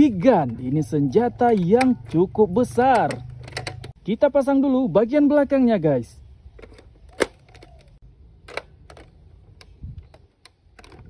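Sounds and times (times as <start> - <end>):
plastic toy parts clicking: 2.8 - 4.0, 6.6 - 11.0.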